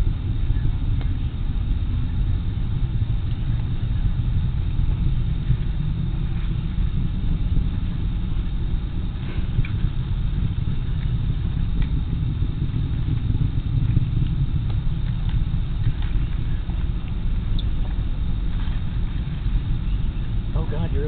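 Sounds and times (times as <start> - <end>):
distant rocket rumble: 0.0 - 21.0.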